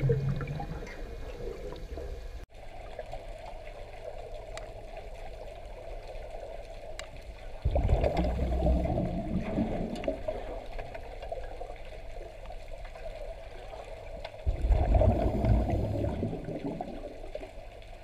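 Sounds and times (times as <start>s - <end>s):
low rumbling gurgle: 0.0s - 18.0s
muffled underwater water noise: 0.0s - 18.0s
faint clicks: 4.4s - 5.1s.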